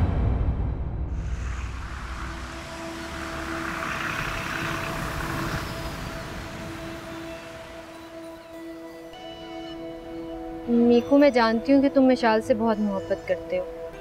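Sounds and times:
sea waves washing: 1.2s - 9.3s
soft background music: 1.4s - 14.0s.

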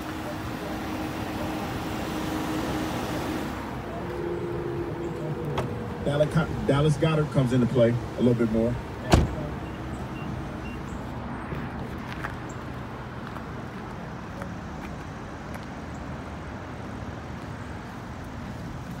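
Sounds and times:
car engine idling: 0.0s - 11.2s
car door thud: 9.0s - 9.5s.

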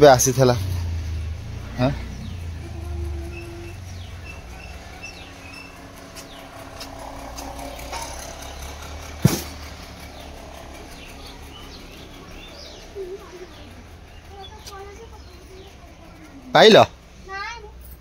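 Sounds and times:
low steady rumble: 0.0s - 18.0s
sharp knock: 9.2s - 9.7s.

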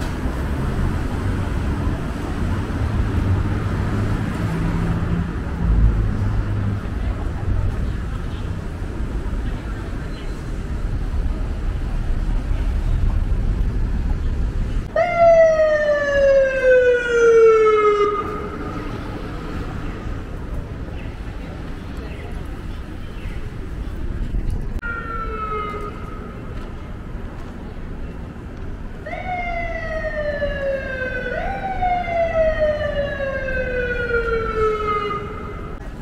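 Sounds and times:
city street traffic rumble: 0.0s - 36.0s
emergency vehicle siren wailing: 14.9s - 19.6s, 24.8s - 26.4s, 29.0s - 35.8s.

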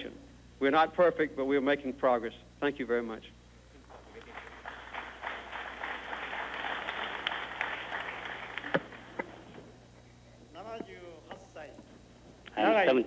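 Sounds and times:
audience applauding: 3.8s - 9.7s.

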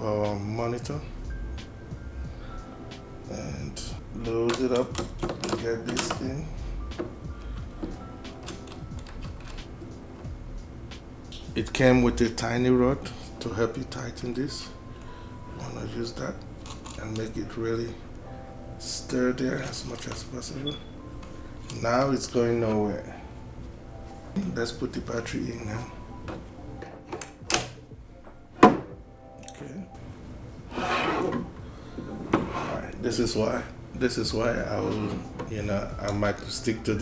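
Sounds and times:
background music: 0.0s - 37.0s
metal parts clicking and tapping: 4.4s - 6.3s.

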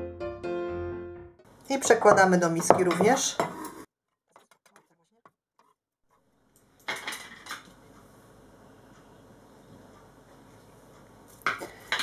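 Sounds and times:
kitchen clatters: 1.8s - 4.6s, 6.8s - 7.7s
knife scraping cutting board: 2.8s - 3.9s.

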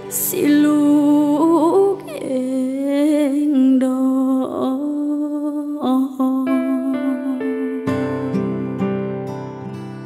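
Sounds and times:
soft backing music: 0.0s - 10.0s
woman singing long notes: 0.2s - 8.0s.

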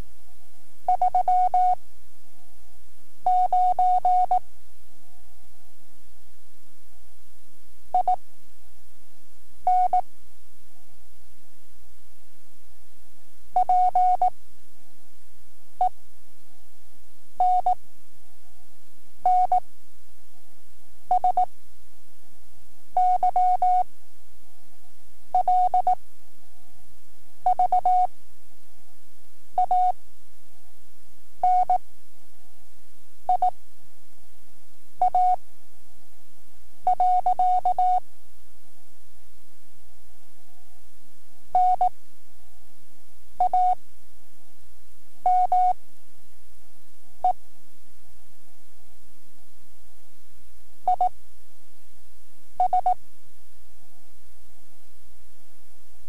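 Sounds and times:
faint hum: 0.0s - 56.0s
morse code tone: 52.6s - 53.0s.

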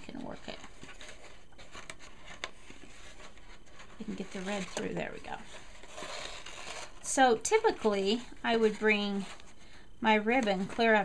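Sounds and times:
paper and ribbon rustling: 0.0s - 9.7s.

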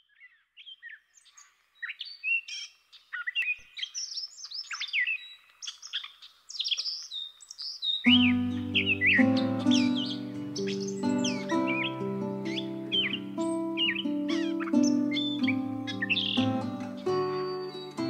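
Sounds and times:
birds chirping and calling: 0.0s - 18.0s
music with sustained chords: 8.1s - 18.0s.

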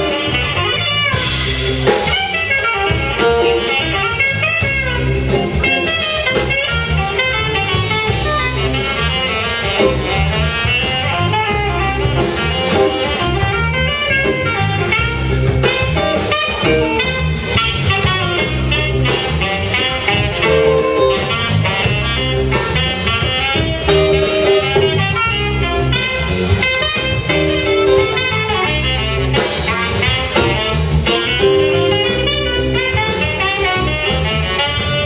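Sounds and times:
bass guitar: 0.0s - 35.0s
drum kit beat: 0.0s - 35.0s
electric guitar: 0.0s - 35.0s
saxophone: 0.0s - 35.0s.

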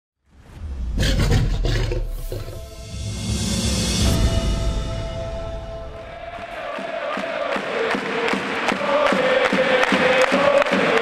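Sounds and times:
lion roaring: 0.9s - 2.7s.

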